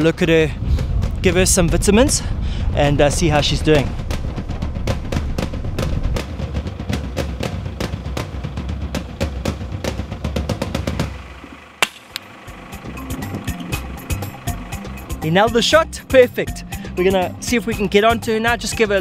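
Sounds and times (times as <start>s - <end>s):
background music with driving drums: 0.0s - 19.0s
dart gun firing crack: 11.8s - 12.2s.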